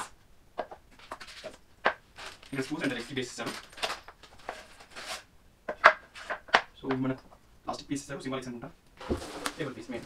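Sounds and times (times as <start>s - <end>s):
cardboard and plastic rustling: 0.9s - 5.3s, 9.0s - 10.0s.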